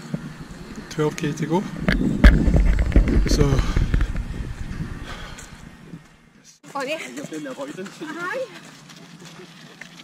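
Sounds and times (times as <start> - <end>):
wind buffeting microphone: 0.0 - 6.3.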